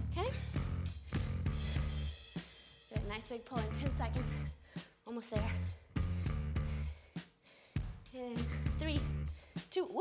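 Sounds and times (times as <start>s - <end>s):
background music with drum beat: 0.0s - 10.0s.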